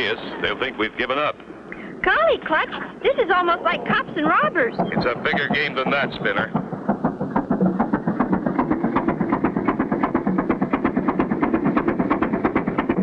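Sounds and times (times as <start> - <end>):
boat engine chugging: 0.0 - 13.0.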